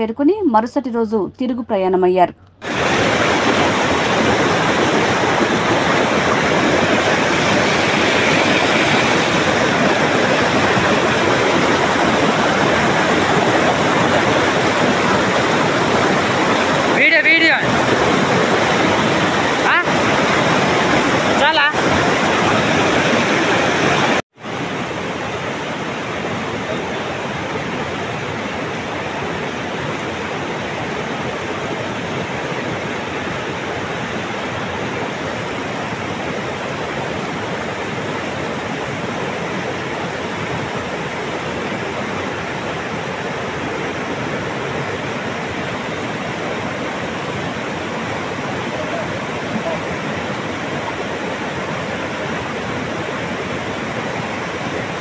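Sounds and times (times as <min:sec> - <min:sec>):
stream rushing: 0:02.6 - 0:55.0.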